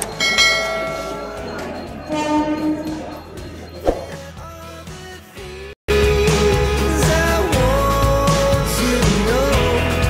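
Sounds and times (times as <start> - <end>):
bell chime ding: 0.0 - 4.2.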